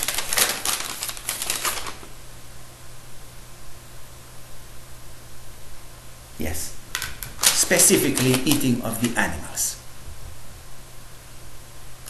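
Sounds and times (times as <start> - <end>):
crinkling and rustling: 0.0 - 2.1, 7.0 - 9.4.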